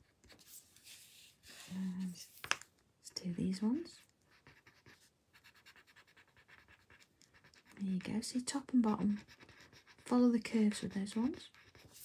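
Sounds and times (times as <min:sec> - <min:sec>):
rapid scratching on paper: 0:04.3 - 0:12.0.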